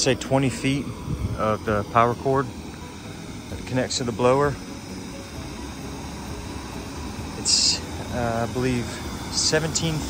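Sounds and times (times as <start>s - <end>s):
electric air blower whooshing hum: 0.0s - 10.0s.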